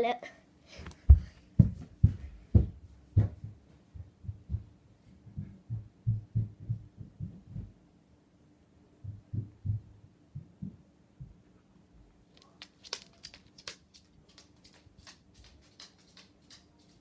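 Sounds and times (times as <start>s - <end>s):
muffled footsteps through floor: 0.7s - 7.8s.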